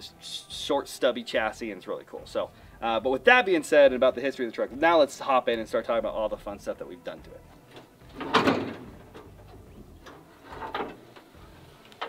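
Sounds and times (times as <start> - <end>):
hood latch clunk: 7.6 - 11.3.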